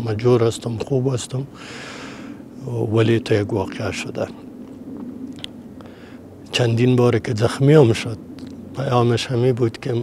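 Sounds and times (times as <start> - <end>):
man speaking: 2.6 - 4.4, 6.5 - 8.2, 8.8 - 10.0.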